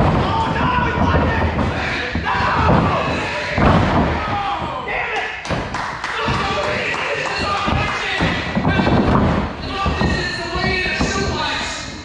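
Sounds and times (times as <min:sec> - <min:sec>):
dull thuds: 0:00.0 - 0:12.0
people's voices: 0:00.0 - 0:12.0.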